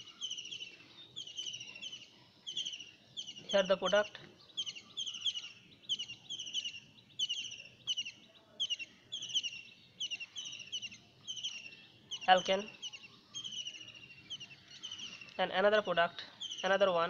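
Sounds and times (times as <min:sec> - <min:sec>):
bird chirping: 0:00.0 - 0:17.0.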